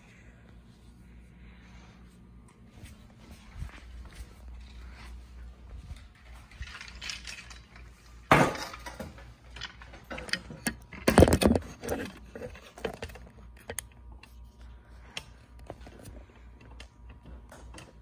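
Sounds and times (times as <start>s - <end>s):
hard objects knocking and clattering: 6.6s - 13.3s.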